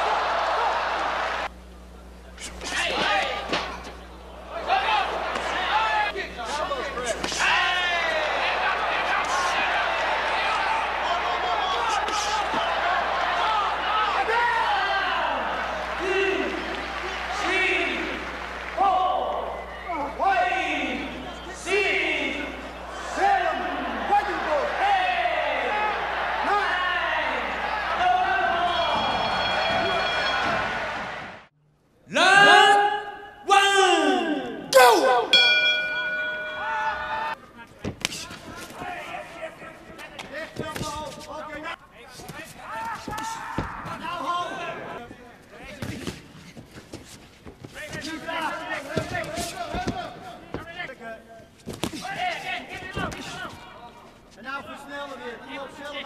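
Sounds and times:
arena crowd noise: 0:00.0 - 0:31.5, 0:32.1 - 0:46.6, 0:47.7 - 0:56.0
man's excited commentary: 0:32.1 - 0:35.3.

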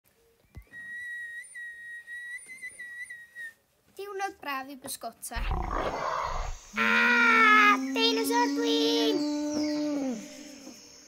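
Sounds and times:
whistle steady high note: 0:00.5 - 0:03.6.

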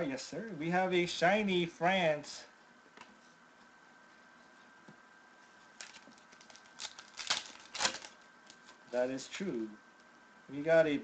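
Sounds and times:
card pack wrapper crinkling: 0:05.8 - 0:09.0.

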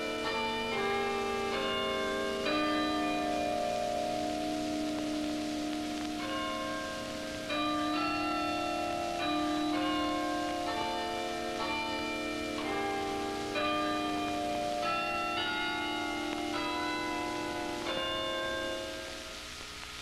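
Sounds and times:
chime bells playing slow tune: 0:00.0 - 0:19.8.

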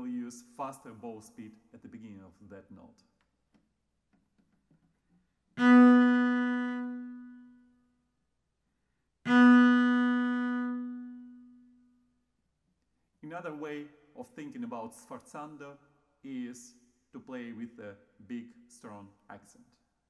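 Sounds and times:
cello notes: 0:05.1 - 0:07.8, 0:09.2 - 0:11.9.

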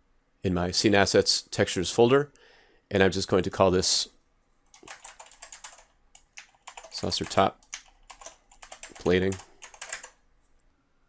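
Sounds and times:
computer keyboard typing: 0:04.7 - 0:10.2.

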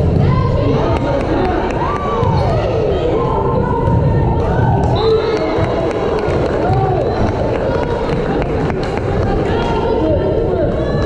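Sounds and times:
crowd din: 0:00.0 - 0:11.0
spectators calling and shouting: 0:00.0 - 0:11.0.

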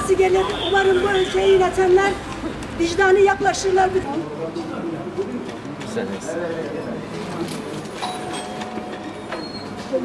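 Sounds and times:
faint background murmur: 0:00.0 - 0:10.0.

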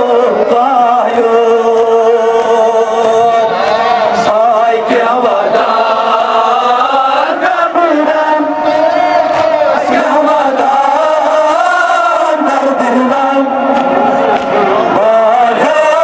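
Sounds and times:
crowd of men chanting: 0:00.0 - 0:16.0.

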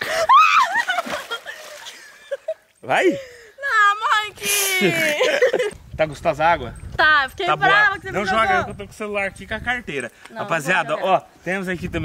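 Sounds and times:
woman laughing: 0:00.0 - 0:02.6, 0:04.4 - 0:05.8.

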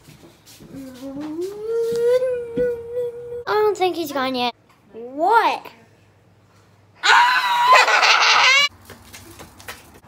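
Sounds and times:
girl shrieking: 0:07.0 - 0:08.7.

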